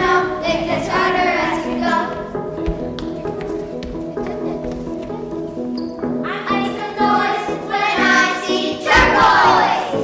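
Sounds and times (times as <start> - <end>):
children singing together: 0.0 - 2.3, 6.2 - 10.0
instrumental accompaniment: 0.0 - 10.0.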